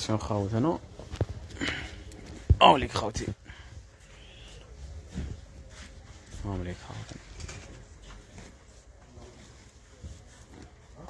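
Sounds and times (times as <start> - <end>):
distant quiet voices: 3.5 - 8.0.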